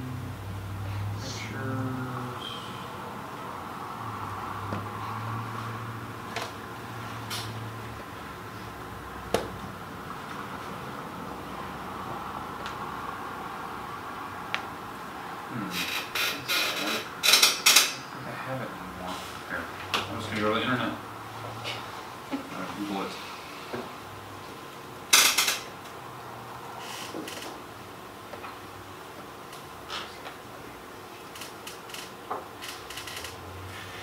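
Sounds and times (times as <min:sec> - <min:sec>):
room hum: 0:00.0 - 0:34.0.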